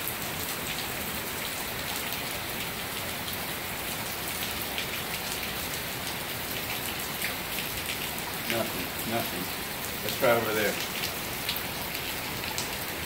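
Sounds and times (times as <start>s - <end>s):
rain falling on pool water: 0.0s - 13.0s.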